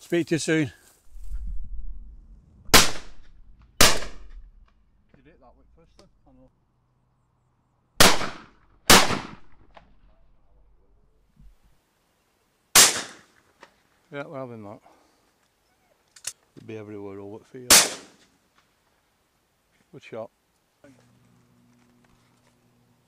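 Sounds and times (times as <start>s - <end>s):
shotgun shots: 2.7s - 4.3s, 8.0s - 9.7s, 12.8s - 13.3s, 17.7s - 18.2s.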